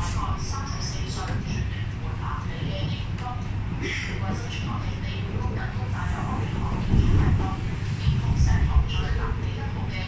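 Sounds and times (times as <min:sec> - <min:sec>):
train running rumble: 0:00.0 - 0:10.0.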